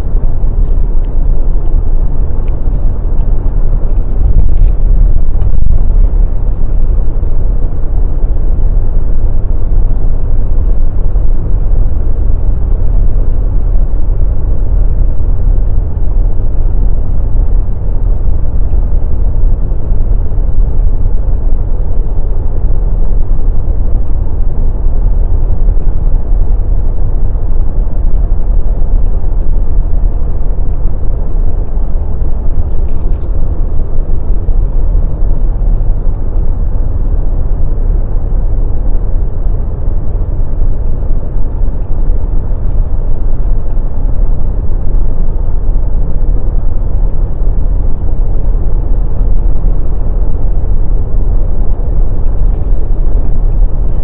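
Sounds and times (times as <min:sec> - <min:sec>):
car driving heard from cabin: 0:00.0 - 0:54.0.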